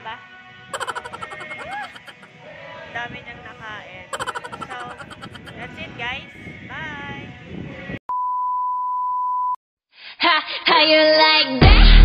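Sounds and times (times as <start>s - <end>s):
person speaking: 0.8s - 2.3s, 4.2s - 5.7s
steady test-tone beep: 4.2s - 5.6s.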